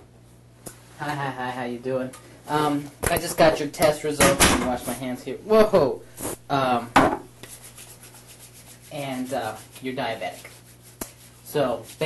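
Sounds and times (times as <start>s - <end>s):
hands rubbing together: 7.4s - 12.0s.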